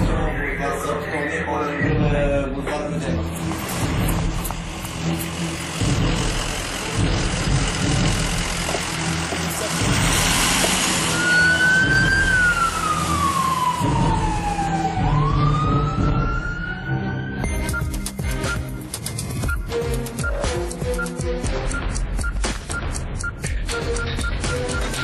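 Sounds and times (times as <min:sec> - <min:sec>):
vehicle rumble: 0:03.2 - 0:13.8
siren: 0:10.7 - 0:17.6.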